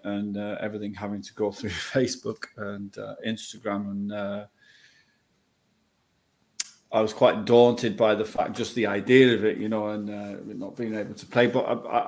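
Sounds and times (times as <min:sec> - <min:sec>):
man speaking: 0:00.0 - 0:04.5, 0:06.9 - 0:12.0.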